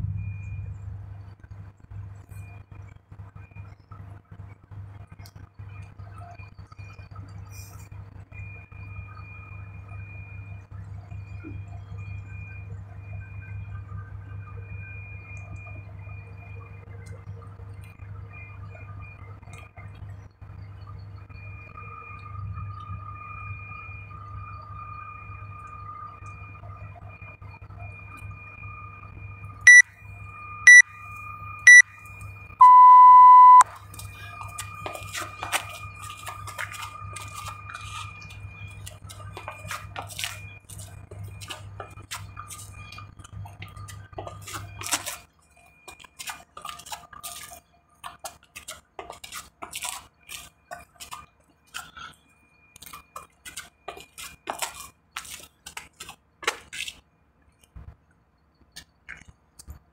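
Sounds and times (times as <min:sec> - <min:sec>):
timer beeps: 0:21.2 - 0:39.7
long timer beep: 0:29.7 - 0:31.0, 0:31.6 - 0:33.7
crunches and scuffs on gravel: 0:53.4 - 0:57.0.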